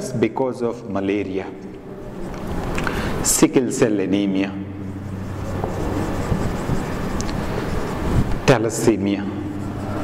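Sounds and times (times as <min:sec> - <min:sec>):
background rumble and hiss: 0:00.2 - 0:10.0
marker writing on whiteboard: 0:01.7 - 0:03.3, 0:04.8 - 0:10.0.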